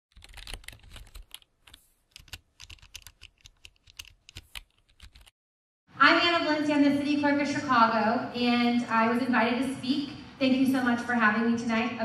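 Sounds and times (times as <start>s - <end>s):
computer keyboard typing: 0.1s - 5.3s.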